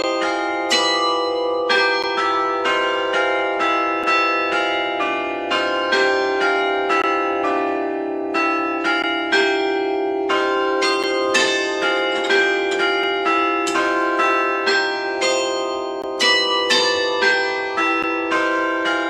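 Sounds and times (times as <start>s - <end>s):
church bells ringing: 0.0s - 19.0s.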